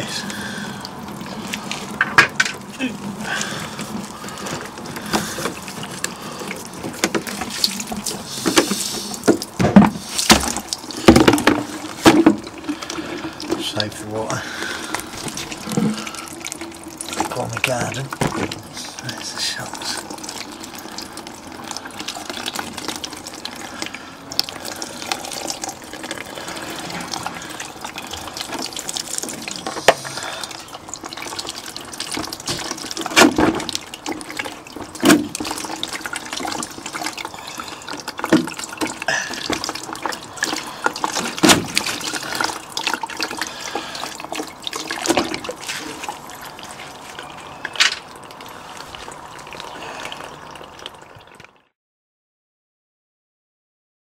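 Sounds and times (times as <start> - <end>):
water running out of bottle: 0.0 - 51.6.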